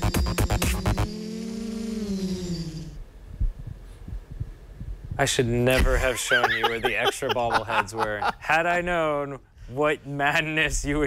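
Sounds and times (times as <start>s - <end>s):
quadcopter propellers buzzing: 0.0s - 3.0s.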